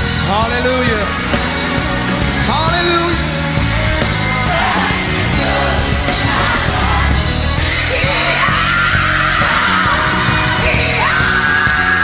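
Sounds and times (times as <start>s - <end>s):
band with bass: 0.0s - 12.0s
gospel lead vocal: 2.2s - 12.0s.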